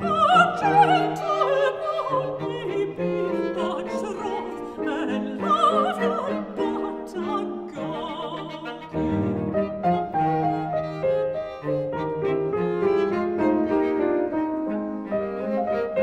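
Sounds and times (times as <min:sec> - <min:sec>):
cello: 0:00.0 - 0:16.0
piano: 0:00.0 - 0:16.0
violin: 0:00.0 - 0:16.0.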